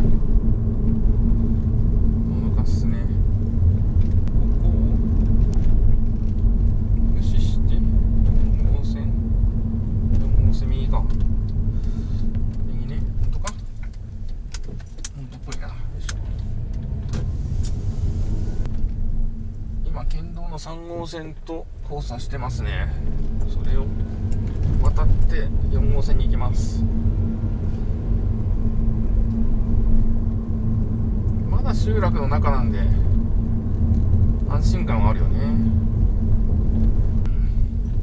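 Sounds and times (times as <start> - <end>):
car engine and tyre rumble: 0.0 - 38.0
light clicks and rattles: 12.3 - 17.2.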